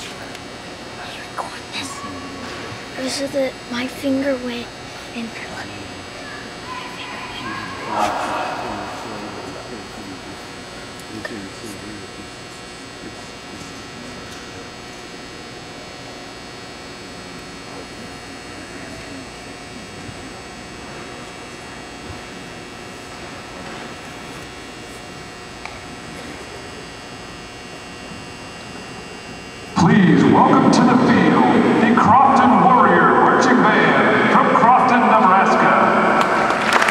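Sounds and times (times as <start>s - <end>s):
steady arena hum: 0.0s - 36.9s.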